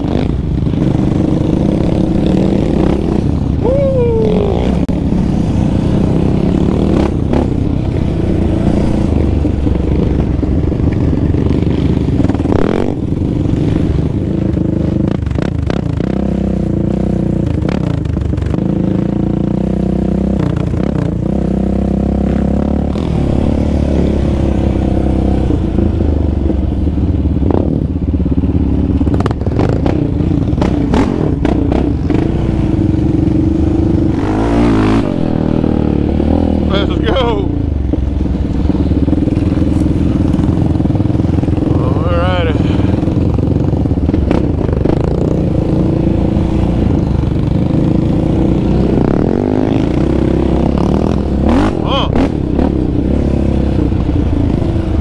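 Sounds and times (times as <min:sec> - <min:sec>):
quad bike engine revving: 0:00.0 - 0:55.0
quad bike rattling: 0:00.0 - 0:55.0.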